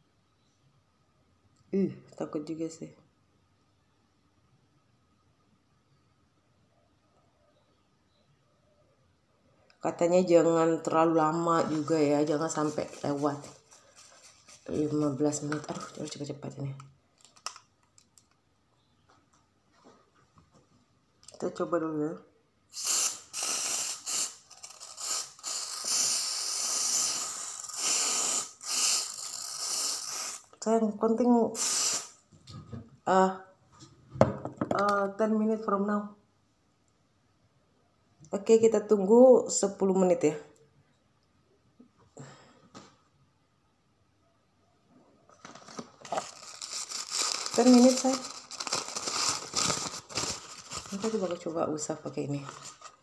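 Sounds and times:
paper tissue crumpling: 11.6s - 16.2s, 45.4s - 51.6s, 52.3s - 53.0s
aerosol foam spray hissing: 22.8s - 30.4s, 31.6s - 32.2s.

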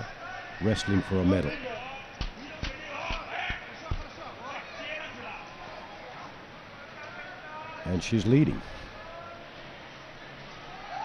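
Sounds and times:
crowd shouting: 0.0s - 7.9s, 8.8s - 11.0s.

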